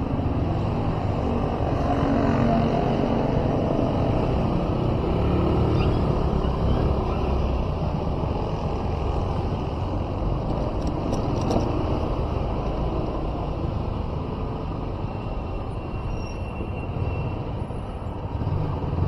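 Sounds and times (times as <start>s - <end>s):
vehicle engine rumble and road noise: 0.0s - 19.0s.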